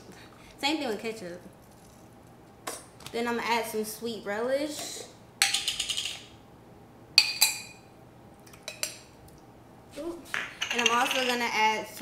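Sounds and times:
utensil clinking on glass jar: 10.4 - 11.5.

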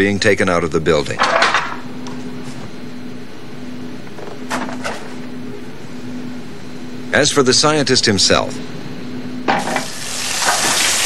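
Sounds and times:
shower head spraying water: 9.7 - 11.0.

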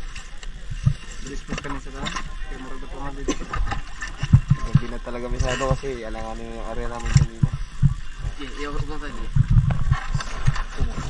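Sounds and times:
people talking: 1.2 - 3.6, 4.5 - 7.6, 8.3 - 9.4
low dull thumps: 3.4 - 11.0.

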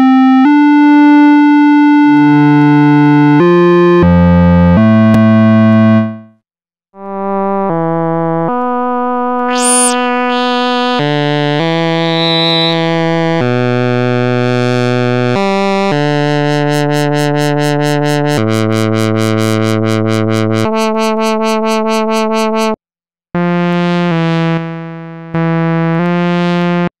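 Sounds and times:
synthesizer playing held notes: 9.4 - 11.0, 11.9 - 12.8.

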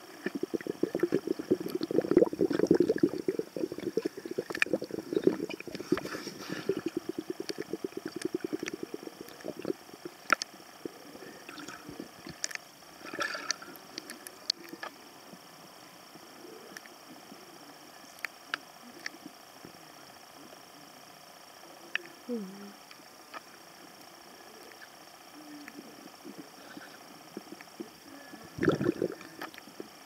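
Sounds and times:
scuba exhaust bubbles gurgling: 0.0 - 15.5, 25.9 - 30.0
underwater clicks: 0.2 - 10.5.

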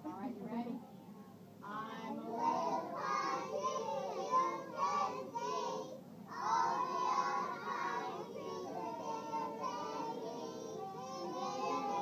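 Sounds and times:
children singing in unison: 2.2 - 12.0.

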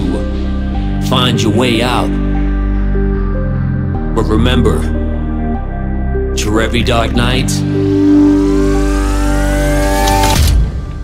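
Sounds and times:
low drone: 0.0 - 11.0
sustained synth chord: 7.1 - 10.3.

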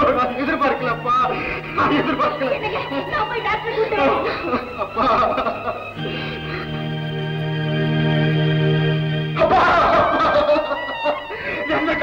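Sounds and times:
film dialogue speech: 0.0 - 4.6.

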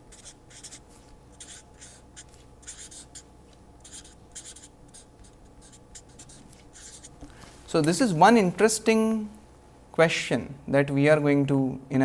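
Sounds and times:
marker pen writing on paper: 0.0 - 7.2.

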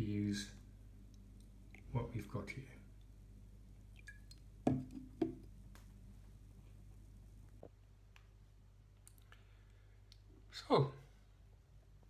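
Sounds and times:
glass bottle set down on table: 4.7 - 5.4.

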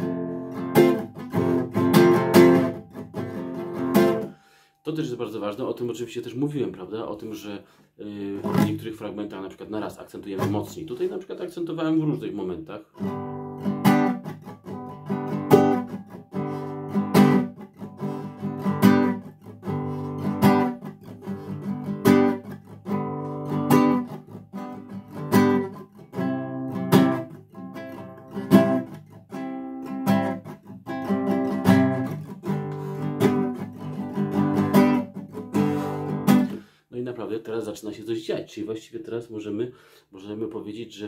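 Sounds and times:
classical guitar strummed: 0.0 - 4.6, 8.4 - 9.0, 12.1 - 36.7.

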